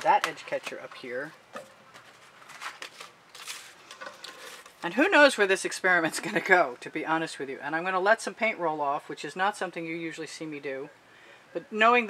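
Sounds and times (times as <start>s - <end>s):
canvas rustling and scraping: 0.0s - 4.9s.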